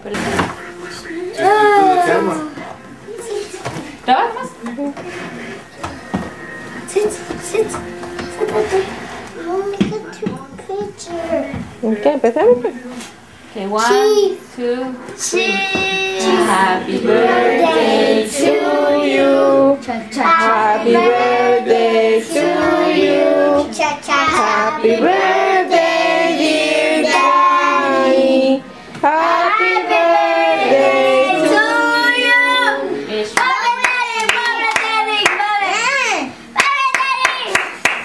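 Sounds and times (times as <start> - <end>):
group singing a celebration song: 14.6 - 35.3
hand clapping: 33.4 - 35.5, 36.6 - 38.0.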